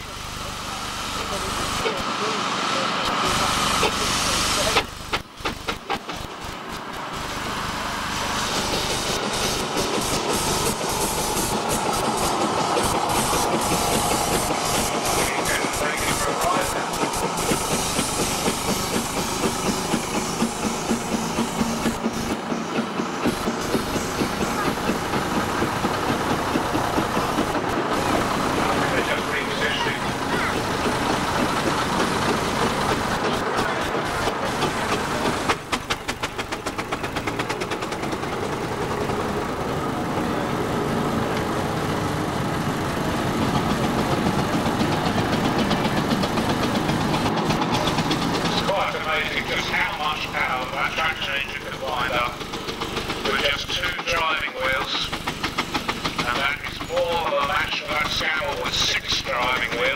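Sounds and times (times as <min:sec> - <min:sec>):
diesel tractor running: 0:00.0 - 0:59.9
steam traction engine running: 0:00.0 - 0:59.9.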